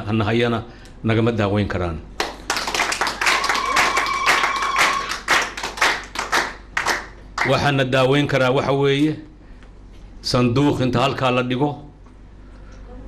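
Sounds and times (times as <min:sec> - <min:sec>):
audience clapping: 0:02.2 - 0:07.7.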